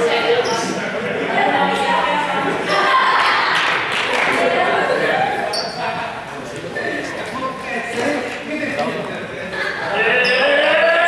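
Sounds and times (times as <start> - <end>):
players calling and chattering: 0.0 - 11.0.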